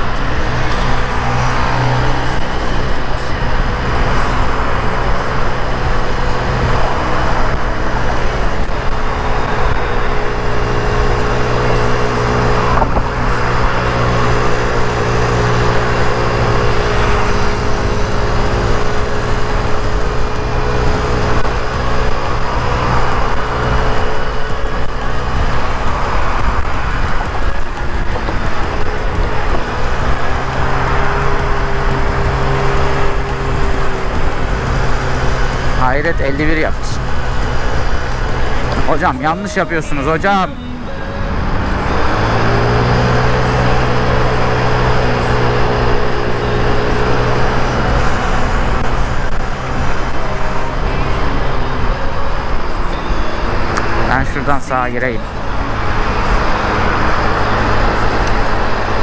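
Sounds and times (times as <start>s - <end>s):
scooter engine running: 0.0s - 59.0s
wind and road noise: 0.0s - 59.0s.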